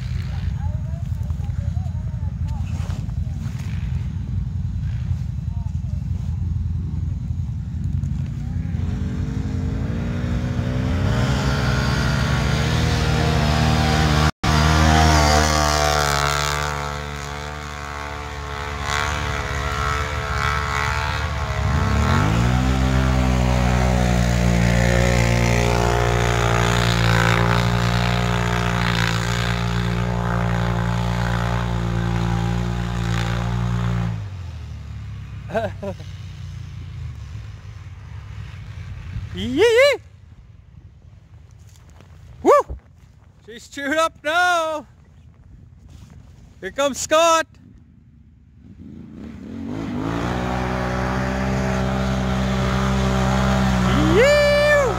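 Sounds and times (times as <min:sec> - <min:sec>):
atv engine at high revs: 0:08.6 - 0:38.4, 0:48.6 - 0:54.9
tyres churning through mud: 0:08.8 - 0:34.3, 0:49.2 - 0:54.9.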